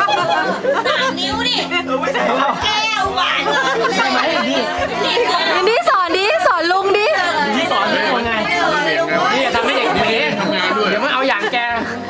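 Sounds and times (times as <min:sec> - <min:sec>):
overlapping conversational chatter: 0:00.0 - 0:12.0.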